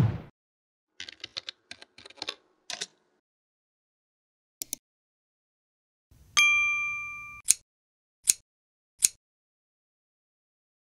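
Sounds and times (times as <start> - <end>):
notification bell chime: 6.4 - 7.4.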